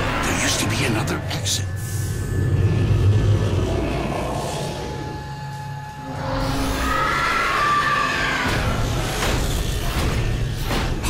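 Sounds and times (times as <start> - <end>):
tense ominous background score: 0.0 - 11.0.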